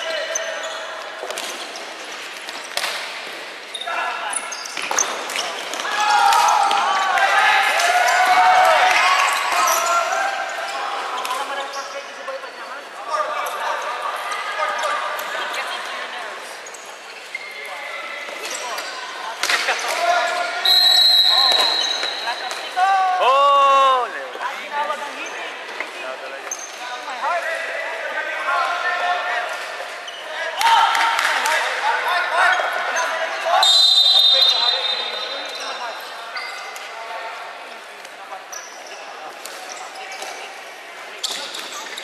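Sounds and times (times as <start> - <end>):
sneakers squeaking on court: 0.0 - 5.8, 14.7 - 19.3, 41.2 - 42.0.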